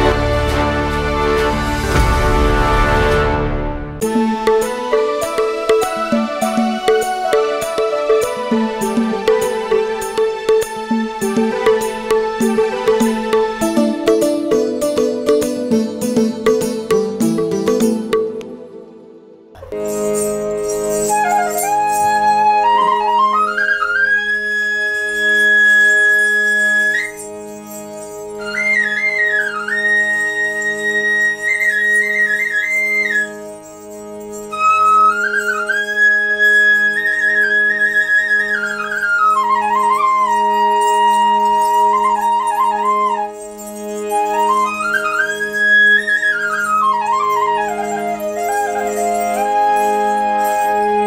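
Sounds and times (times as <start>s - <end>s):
harmonium pulsing accompaniment: 0.0s - 51.0s
bamboo flute melody: 4.0s - 18.5s, 19.6s - 51.0s.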